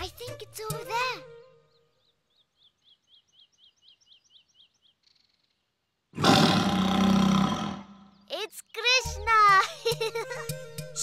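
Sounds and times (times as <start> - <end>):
tiger roar: 6.2 - 8.1.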